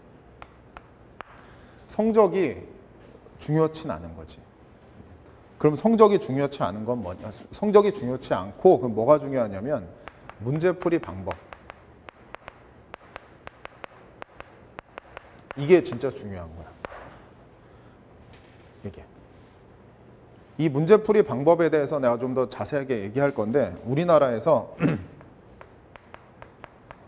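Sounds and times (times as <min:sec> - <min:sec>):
chalk tapping and scraping: 0:10.0 - 0:17.2, 0:25.2 - 0:27.0.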